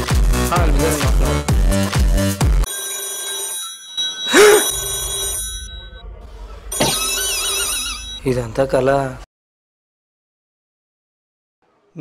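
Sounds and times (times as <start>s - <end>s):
beat-driven background music: 0.0s - 2.7s
sustained electronic tones: 4.0s - 8.3s.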